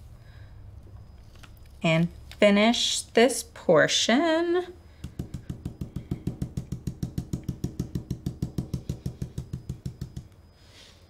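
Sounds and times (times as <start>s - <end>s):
stencil brush tapping on wood: 5.0s - 10.3s.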